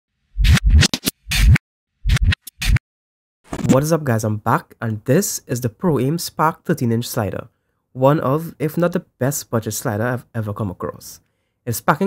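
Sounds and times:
record scratches: 0.4s - 2.8s, 3.5s - 3.9s.

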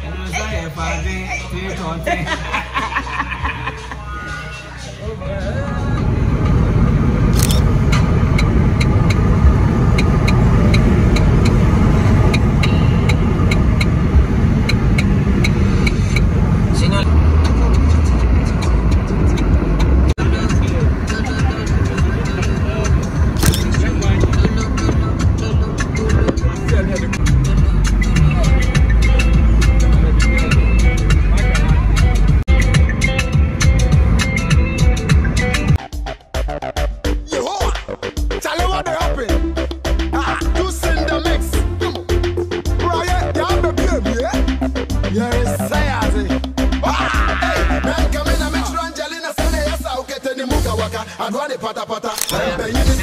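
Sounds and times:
car interior road rumble: 5.1s - 30.2s
music with steady beat: 17.4s - 50.9s.

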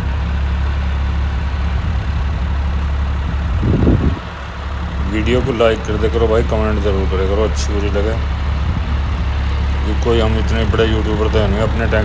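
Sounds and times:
tractor diesel engine droning: 0.0s - 12.0s.

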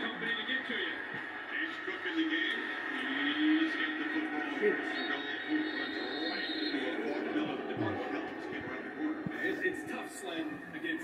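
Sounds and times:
stadium crowd noise through tv: 0.0s - 11.0s.

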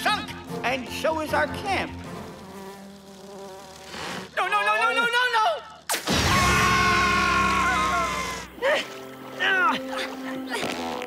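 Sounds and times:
cartoon mosquito buzzing: 1.4s - 5.1s, 9.8s - 11.0s.

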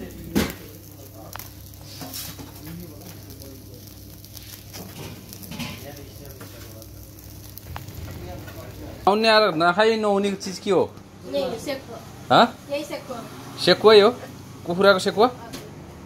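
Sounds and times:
chicken sizzling over fire: 0.0s - 16.0s.

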